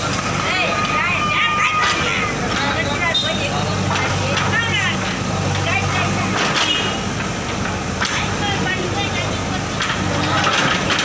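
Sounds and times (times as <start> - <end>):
diesel engine running under load: 0.0 - 11.0
people's voices: 0.0 - 11.0.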